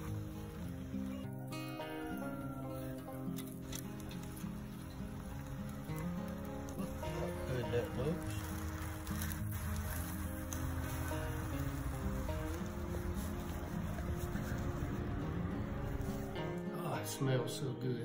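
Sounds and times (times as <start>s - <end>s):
background music held notes: 0.0s - 18.0s.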